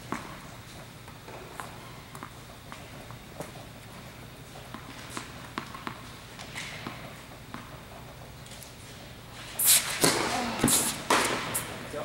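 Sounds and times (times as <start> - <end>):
tennis racket hitting ball: 10.0 - 11.7.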